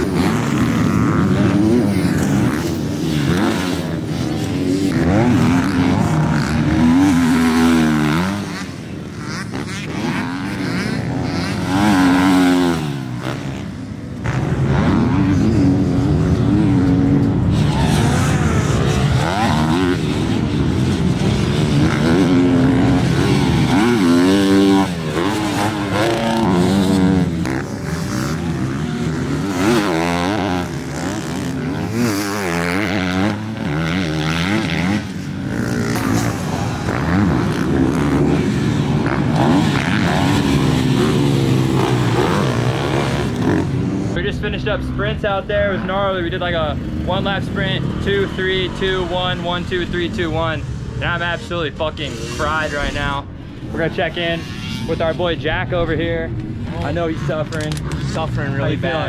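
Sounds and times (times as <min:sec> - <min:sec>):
dirt bike engines revving: 0:00.0 - 0:59.0.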